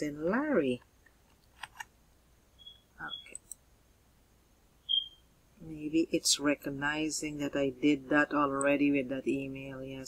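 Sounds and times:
keyboard and mouse clicks: 1.0 - 1.9, 3.1 - 3.6
short high beeps: 2.6 - 3.4, 4.9 - 5.2.

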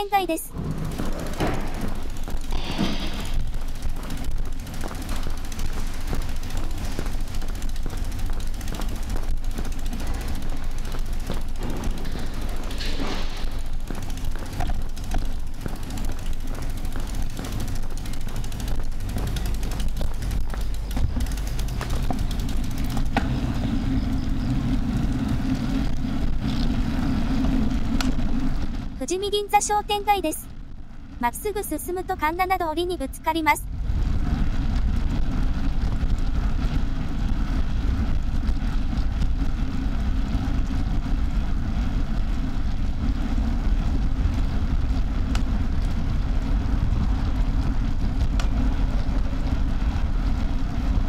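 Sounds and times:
bicycle rolling over paving: 0.0 - 31.2, 33.7 - 51.0
steady hum: 0.0 - 51.0
small clicks: 0.8 - 26.7, 48.2 - 48.7.

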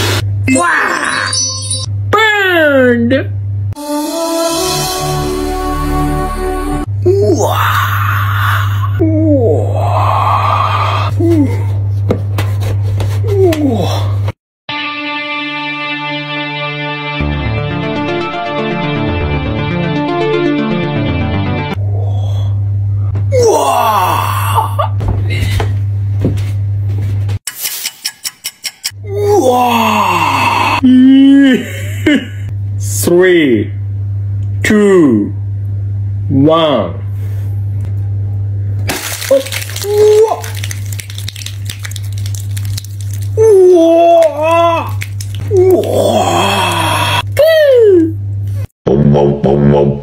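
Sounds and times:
moaning voice-like calls: 7.0 - 11.5, 43.4 - 48.1
person wailing: 7.0 - 11.6, 23.3 - 25.0, 29.1 - 31.7, 39.3 - 40.6, 43.3 - 48.2
steady low hum: 21.8 - 23.4.

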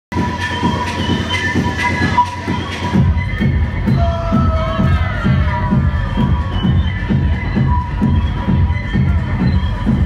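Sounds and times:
techno music over club speakers: 0.1 - 10.0.

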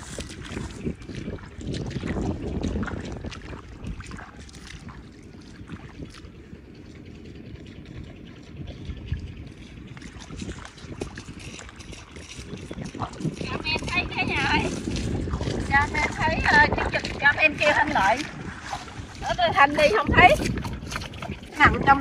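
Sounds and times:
footsteps splashing through water and mud: 0.0 - 22.0
wind rumbling on microphone: 0.0 - 22.0.

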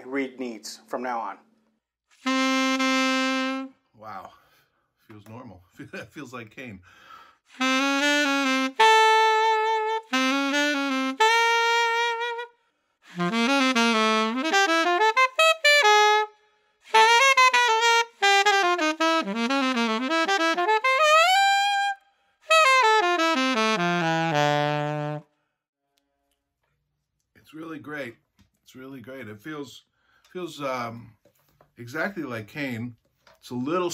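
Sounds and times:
solo saxophone: 2.1 - 4.1, 7.5 - 25.4
player breathing: 6.8 - 7.5.

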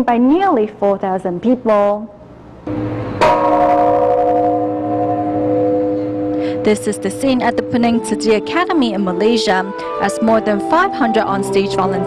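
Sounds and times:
large temple bell ringing: 2.7 - 12.0.

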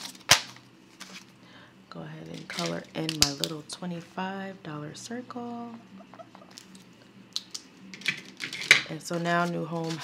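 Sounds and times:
paper rustling: 9.3 - 10.0.

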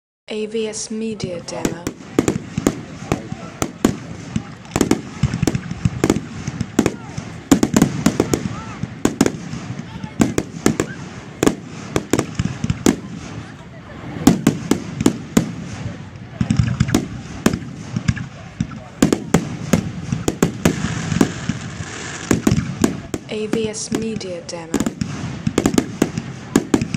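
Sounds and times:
firework shells bursting: 1.4 - 13.6, 14.2 - 26.9.

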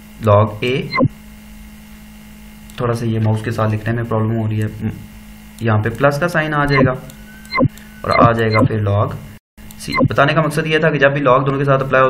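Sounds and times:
electrical hum: 0.0 - 10.6
man talking: 8.1 - 9.2, 9.8 - 12.0.

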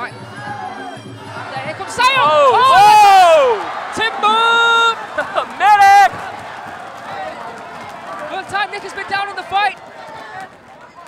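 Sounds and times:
crowd noise: 0.0 - 11.0
excited high-pitched yells: 1.9 - 5.0.

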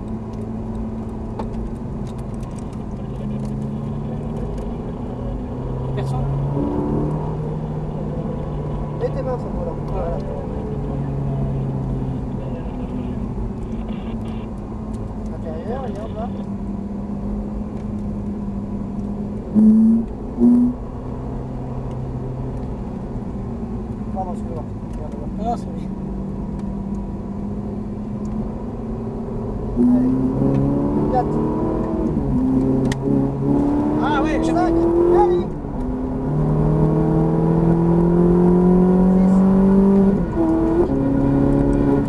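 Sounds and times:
car engine from inside cabin: 0.0 - 42.0.

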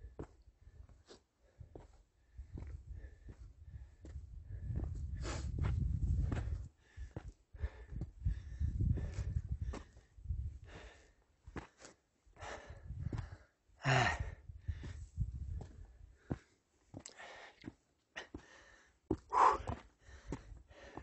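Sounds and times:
man panting and gasping: 0.1 - 21.0.

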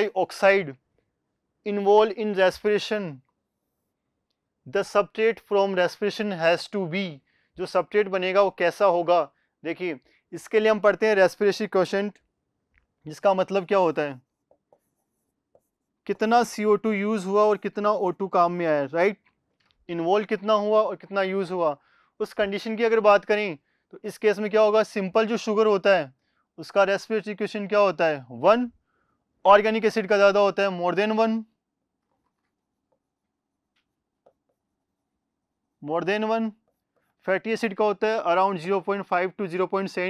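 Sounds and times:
marker writing on a board: 13.8 - 16.5, 32.7 - 35.2.

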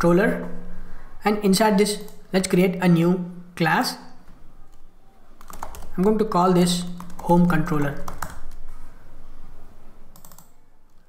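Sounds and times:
faint background noise: 0.0 - 11.0
computer keyboard clicks: 5.4 - 6.2, 7.0 - 8.6, 10.2 - 11.0.

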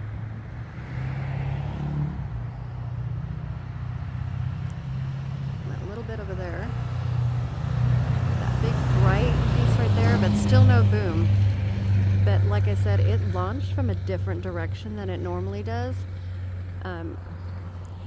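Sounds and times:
vehicle engine running: 2.3 - 18.0
people's voices: 8.4 - 11.3, 12.3 - 16.0.

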